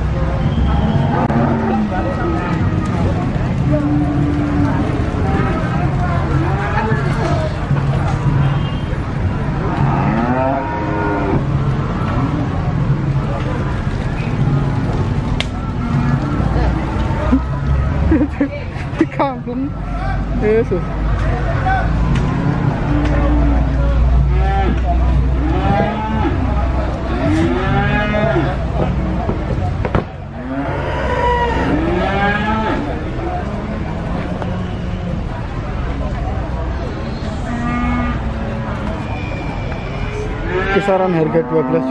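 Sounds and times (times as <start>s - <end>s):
cattle mooing: 9.7s - 11.4s, 27.2s - 28.6s, 30.4s - 33.0s, 37.4s - 38.5s, 40.0s - 41.9s
cow mooing: 40.1s - 41.9s.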